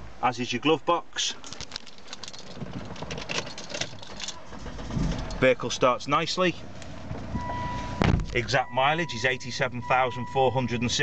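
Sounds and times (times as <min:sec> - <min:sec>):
light clicks and rattles in car: 0:01.2 - 0:08.5.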